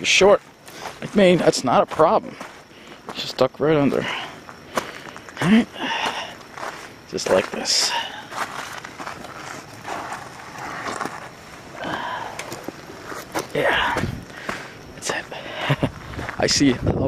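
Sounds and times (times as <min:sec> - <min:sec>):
footsteps on gravel: 0:00.0 - 0:17.0.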